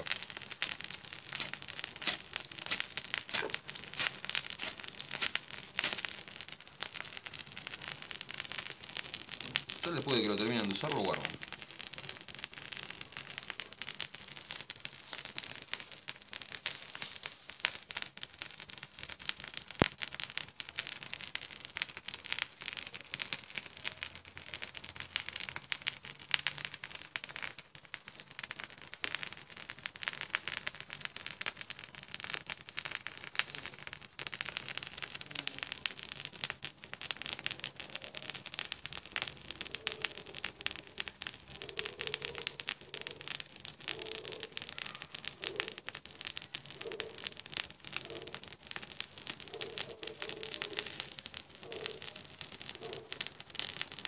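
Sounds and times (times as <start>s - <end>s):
fire starters crackling and popping: 0.0s - 54.0s.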